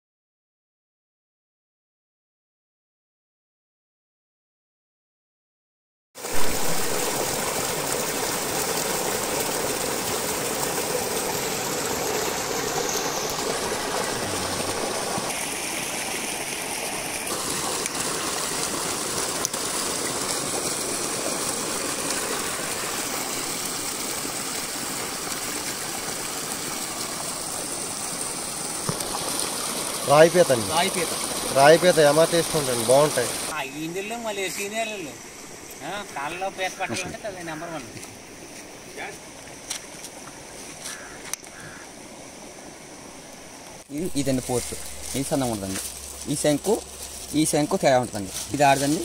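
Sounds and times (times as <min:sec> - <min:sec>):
water rushing through spillway: 0:06.2 - 0:37.7, 0:43.8 - 0:49.0.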